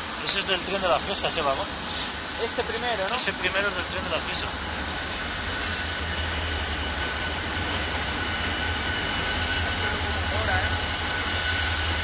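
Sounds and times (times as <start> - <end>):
diesel locomotive drone: 0.0 - 12.0
high-pitched wheel squeal: 1.4 - 12.0.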